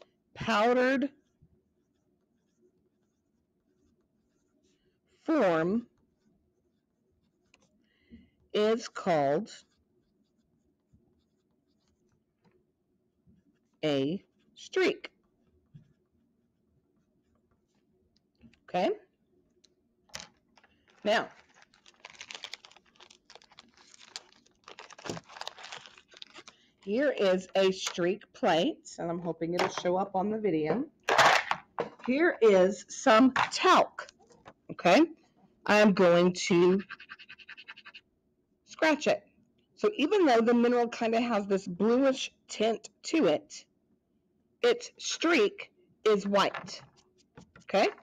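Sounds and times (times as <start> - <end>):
pencil scratching on paper: 0.5 - 7.8, 9.0 - 12.6, 36.5 - 38.0.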